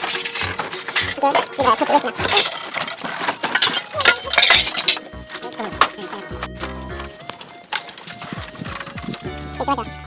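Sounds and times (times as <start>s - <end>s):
metal kitchenware clinking: 0.0s - 6.4s.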